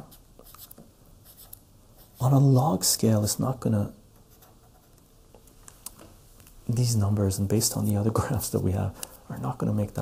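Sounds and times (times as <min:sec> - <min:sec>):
marker scratching on paper: 0:00.0 - 0:02.3, 0:04.3 - 0:05.0.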